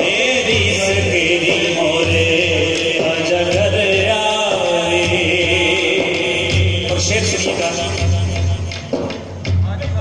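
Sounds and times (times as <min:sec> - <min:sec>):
man singing devotional song: 0:00.0 - 0:08.8
musical accompaniment: 0:00.0 - 0:10.0.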